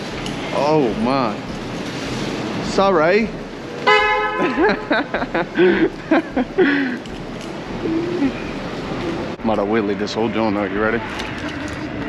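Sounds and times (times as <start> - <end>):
man laughing and hollering: 4.4 - 7.0.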